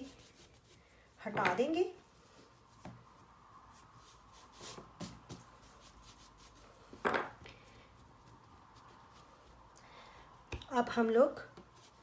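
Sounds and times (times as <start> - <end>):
hands rubbing and patting dough: 0.0 - 12.0.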